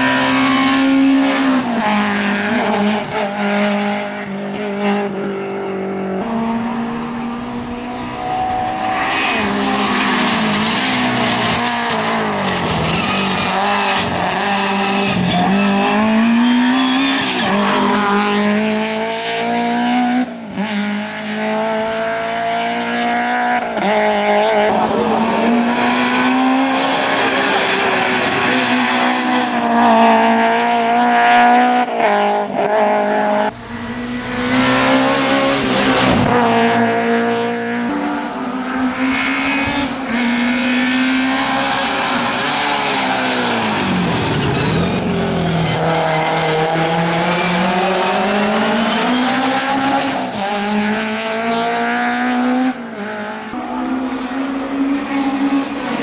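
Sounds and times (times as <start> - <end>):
race car engine accelerating: 0.0 - 56.0.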